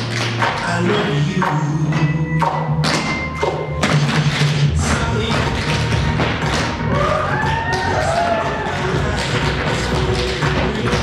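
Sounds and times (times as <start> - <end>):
recorded music: 0.0 - 11.0.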